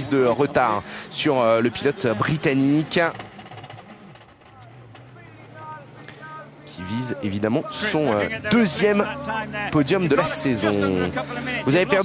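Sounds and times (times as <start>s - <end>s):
faint rally car engine: 0.0s - 12.0s.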